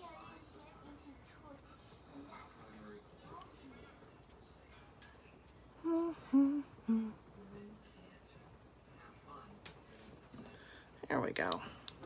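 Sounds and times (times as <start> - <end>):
woman humming: 5.8 - 7.3.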